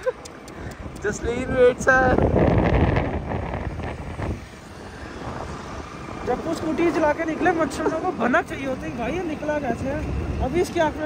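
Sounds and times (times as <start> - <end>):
wind rushing over microphone: 0.3 - 11.0.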